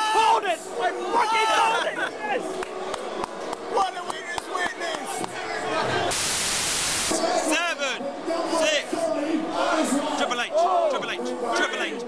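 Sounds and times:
hissing static burst: 6.1s - 7.2s.

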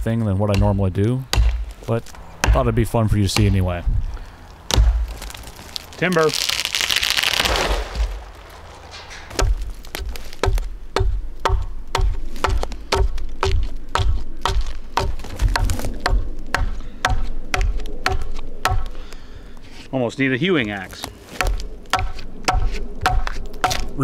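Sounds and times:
hatchet chopping wood: 0.5s - 3.6s, 4.7s - 5.3s, 9.4s - 19.0s, 21.4s - 23.9s.

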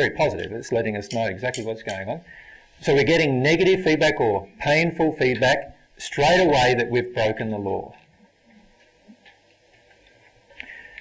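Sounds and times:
faint clicks: 7.9s - 11.0s.

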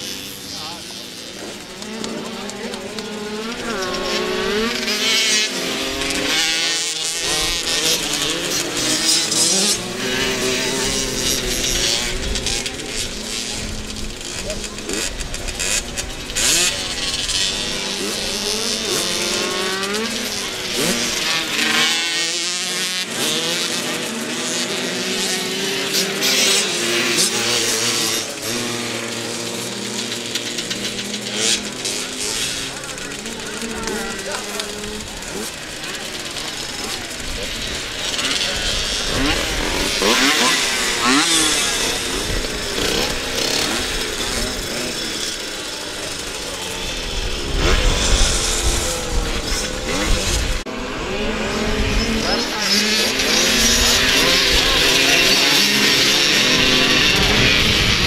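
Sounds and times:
motocross bikes revving: 0.0s - 58.0s.

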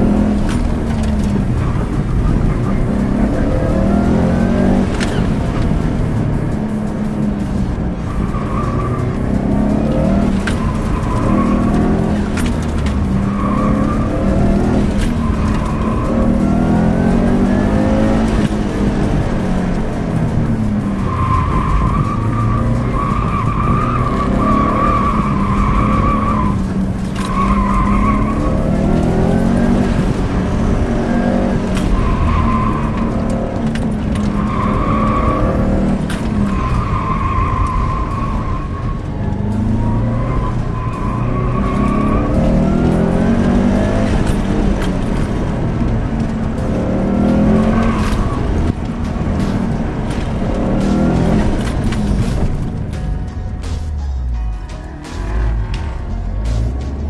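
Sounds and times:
tires squealing: 0.0s - 54.0s
car engine revving: 0.0s - 57.0s.

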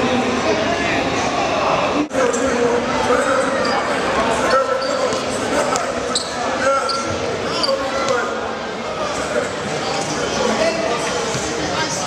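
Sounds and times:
crowd chatter echoing: 0.0s - 12.0s.

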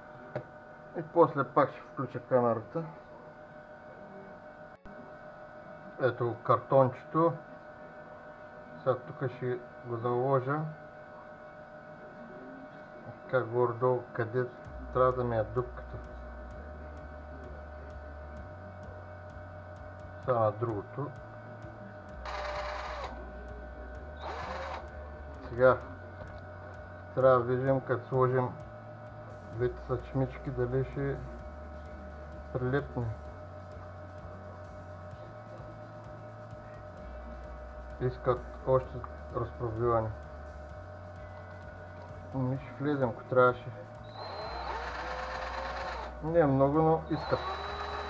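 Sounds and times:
cordless drill whine: 22.2s - 23.2s, 24.2s - 25.6s, 44.0s - 48.0s.

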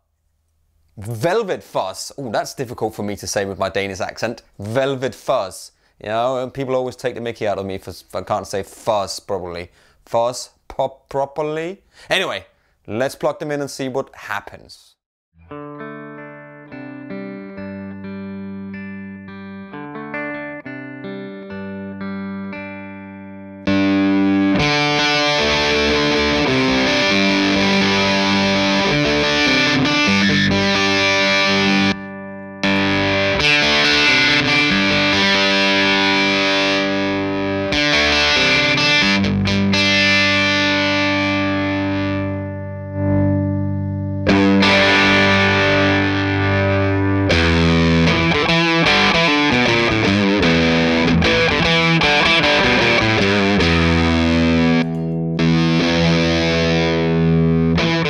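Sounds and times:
fuzzed electric guitar riffs: 15.4s - 58.0s.

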